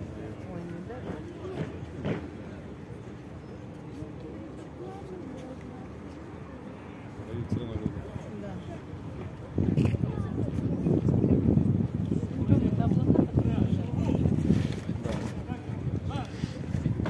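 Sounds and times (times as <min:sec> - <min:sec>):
crowd chatter outdoors: 0:00.0 - 0:17.0.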